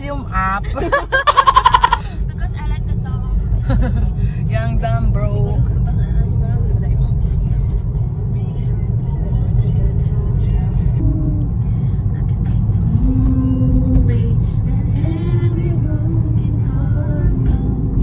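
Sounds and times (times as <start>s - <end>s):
car engine and road noise: 0.0s - 18.0s
pop song playing: 4.4s - 18.0s.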